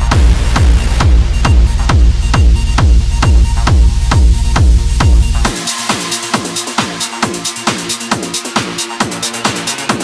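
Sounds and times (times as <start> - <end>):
heavy sustained bass: 0.0 - 5.5
kick drum thuds: 0.0 - 5.6.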